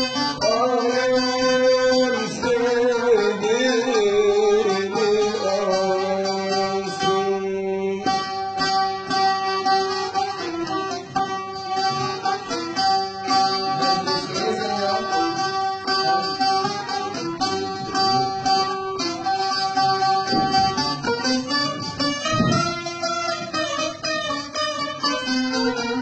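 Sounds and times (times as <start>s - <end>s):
plucked long-necked lute: 0.0s - 26.0s.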